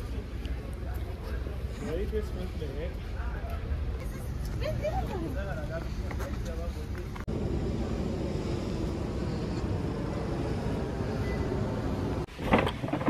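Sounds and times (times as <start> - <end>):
low traffic rumble: 0.0 - 13.0.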